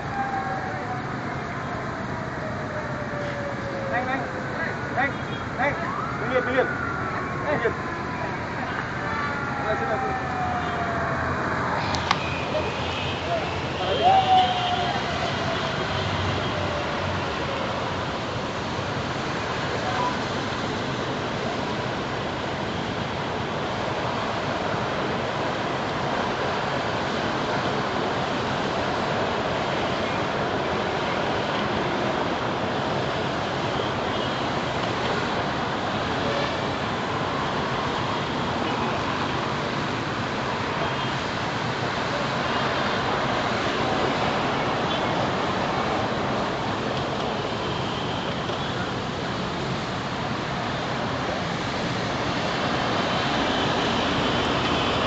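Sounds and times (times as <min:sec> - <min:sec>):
road traffic rushing past: 0:00.0 - 0:55.0.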